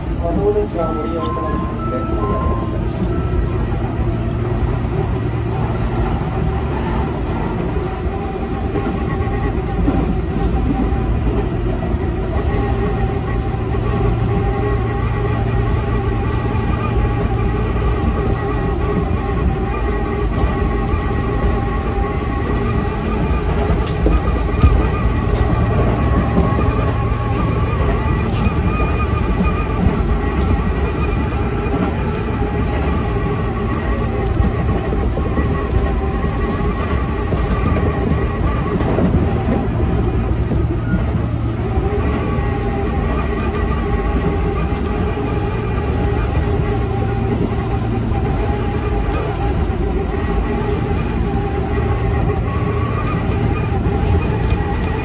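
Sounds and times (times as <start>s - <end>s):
train motor whine: 0.0s - 55.0s
wheels rumbling on rails: 0.0s - 55.0s.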